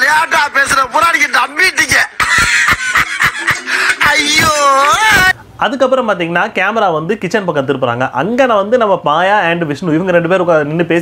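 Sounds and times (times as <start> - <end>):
man laughing in rapid bursts: 1.8 - 5.3.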